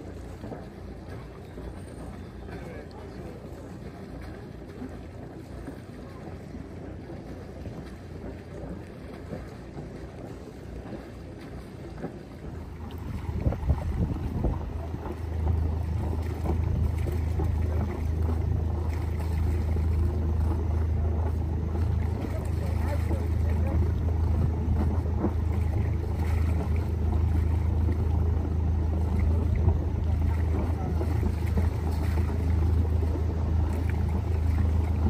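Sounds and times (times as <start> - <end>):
boat engine running: 0.0 - 35.0
low engine hum: 0.0 - 35.0
water noise: 0.0 - 35.0
wind noise: 12.6 - 20.8.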